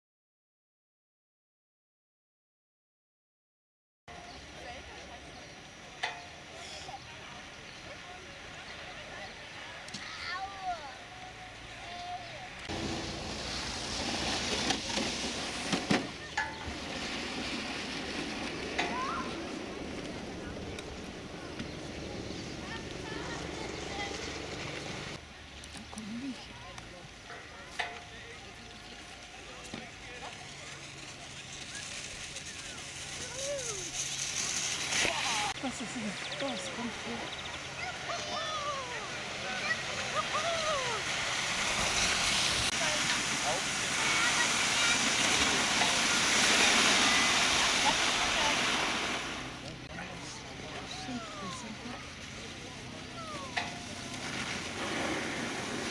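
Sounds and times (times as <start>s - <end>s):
sleds sliding over packed snow: 4.2s - 55.9s
people calling out: 37.8s - 41.1s.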